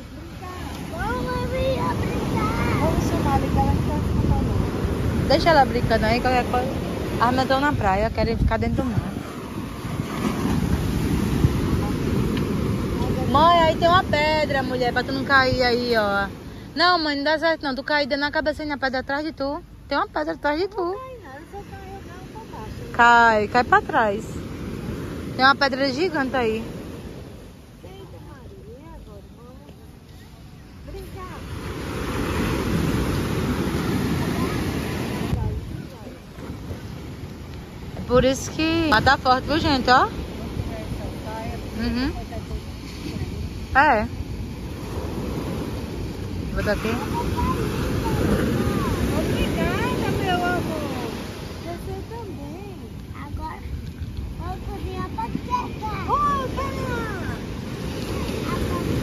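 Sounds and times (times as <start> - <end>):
ocean surf breaking on sand: 0.0 - 59.0
wind buffeting microphone: 0.0 - 59.0.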